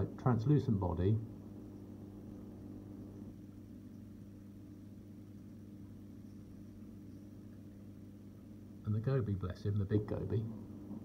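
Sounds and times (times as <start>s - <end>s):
aquarium equipment low hum: 0.0s - 11.0s.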